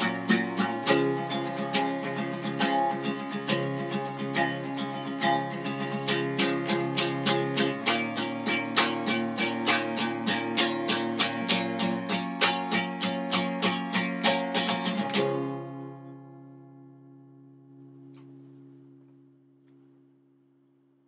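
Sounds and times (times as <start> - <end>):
acoustic guitar strumming: 0.0 - 20.1.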